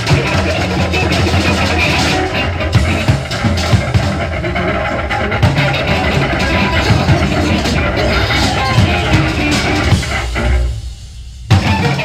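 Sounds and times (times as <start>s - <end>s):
rock band music: 0.0s - 12.0s.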